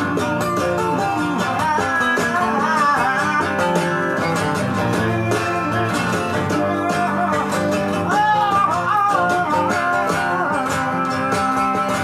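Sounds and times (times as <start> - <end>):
blues rock guitar music: 0.0 - 12.0.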